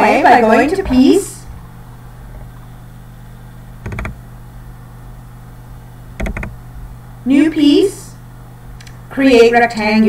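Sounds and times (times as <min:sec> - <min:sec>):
steady low hum: 0:00.0 - 0:10.0
computer mouse clicks: 0:03.8 - 0:04.2, 0:06.2 - 0:06.6.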